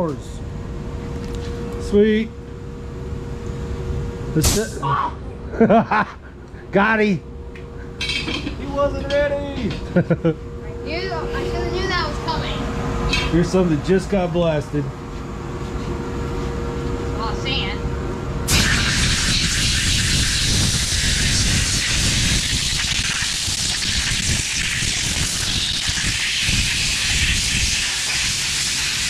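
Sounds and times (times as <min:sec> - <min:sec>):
steady machine hum: 0:00.0 - 0:29.0
compressed air blow gun hissing: 0:18.5 - 0:29.0.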